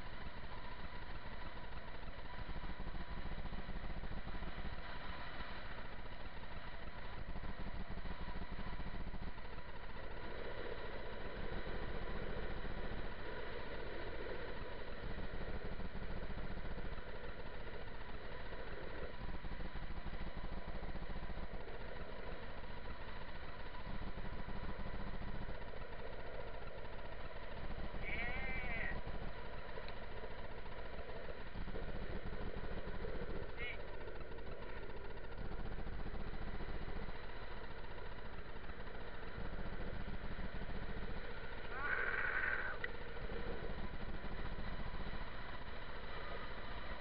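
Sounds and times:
wheels rolling on asphalt: 0:00.0 - 0:47.0.

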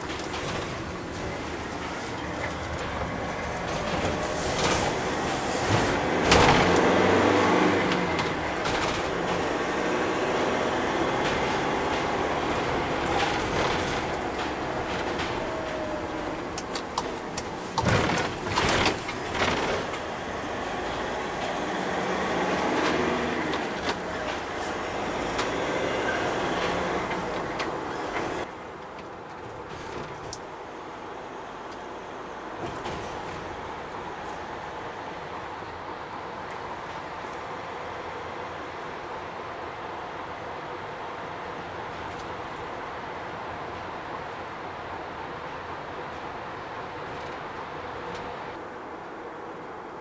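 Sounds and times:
clunks: 0:00.0 - 0:30.6, 0:32.5 - 0:38.8
tyre and road noise: 0:00.0 - 0:50.0
van diesel engine running: 0:00.0 - 0:50.0.

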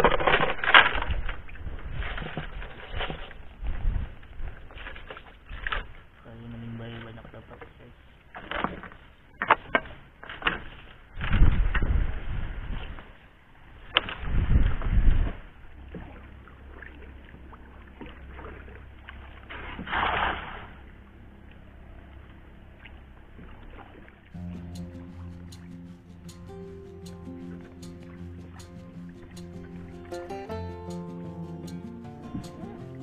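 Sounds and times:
rush of water: 0:13.8 - 0:21.0.

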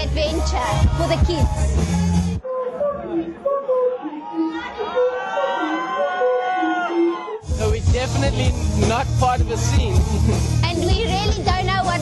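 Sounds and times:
raised drawn-out voice: 0:02.4 - 0:07.4
voices chattering: 0:02.4 - 0:12.0.

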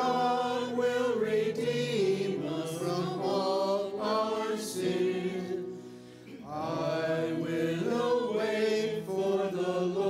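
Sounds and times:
voices singing slow chant: 0:00.0 - 0:10.0.

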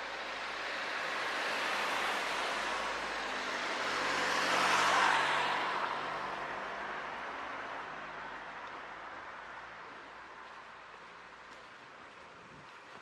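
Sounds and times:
cars passing: 0:00.0 - 0:13.0.

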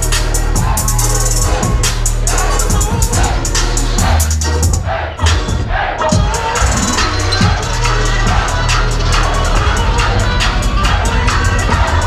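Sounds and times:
crowd cheering and shouting: 0:00.0 - 0:12.0
loud electronic music: 0:00.0 - 0:12.0.

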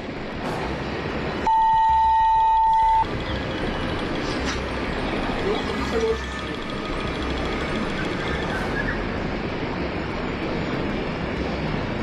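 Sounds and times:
noisy outdoor background: 0:00.0 - 0:12.0
high censor bleep: 0:01.4 - 0:03.1.

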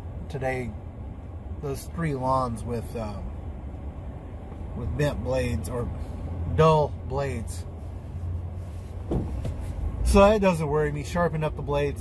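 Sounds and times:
pickup truck engine rumble: 0:00.0 - 0:12.0.

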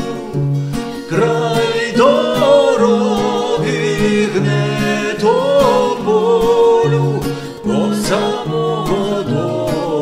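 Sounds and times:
plucked acoustic guitar: 0:00.0 - 0:10.0
voices singing a folk ballad: 0:00.0 - 0:10.0.

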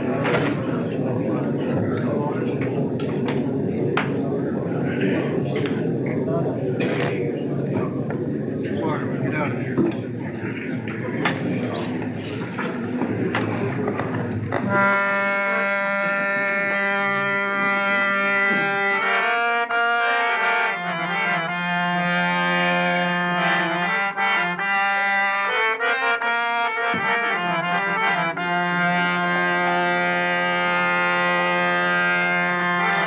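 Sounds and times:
long held instrumental note: 0:14.5 - 0:33.0.

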